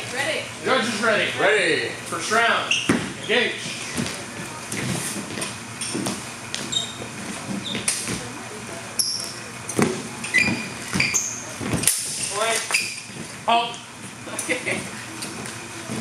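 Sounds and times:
footsteps on wooden floor: 2.9s - 8.3s.

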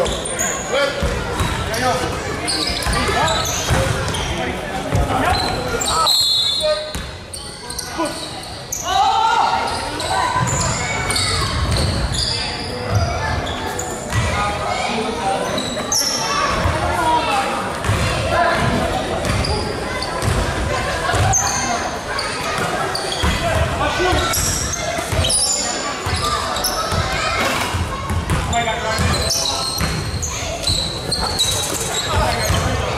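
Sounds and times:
sneaker squeaks: 0.0s - 14.4s, 15.3s - 16.8s, 17.7s - 32.9s.

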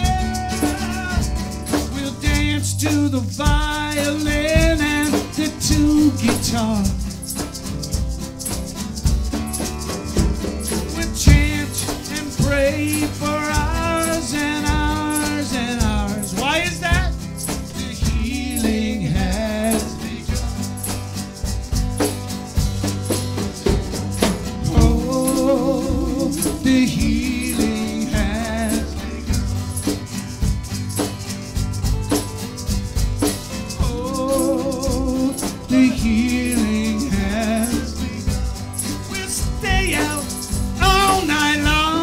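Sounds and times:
acoustic guitar: 0.0s - 42.0s
drum kit beat with cymbal ticks: 0.0s - 42.0s
electric guitars: 0.0s - 42.0s.

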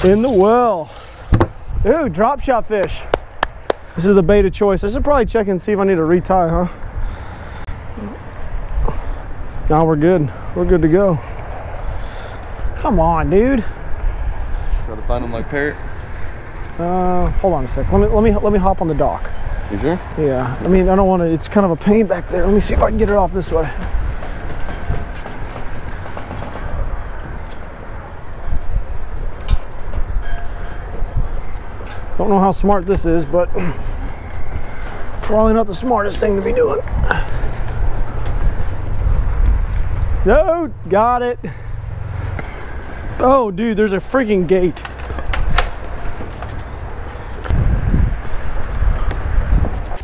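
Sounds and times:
strong wind buffeting microphone: 0.0s - 50.0s.

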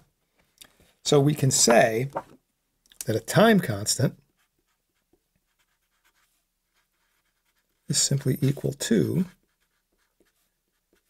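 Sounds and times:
marker scratching on paper: 4.4s - 11.0s.

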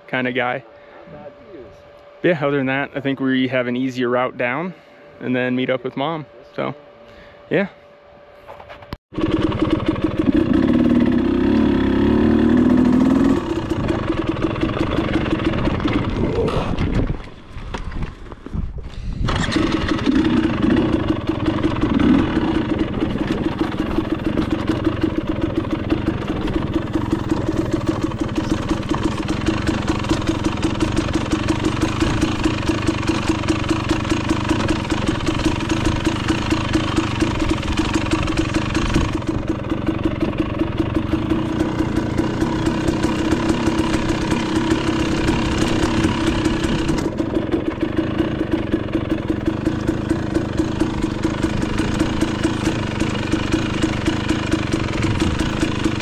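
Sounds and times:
dirt bike engine running: 9.1s - 56.0s.

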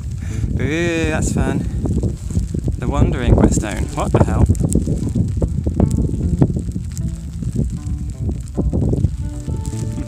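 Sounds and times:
wind buffeting microphone: 0.0s - 10.0s
soft instrumental music: 5.0s - 10.0s.

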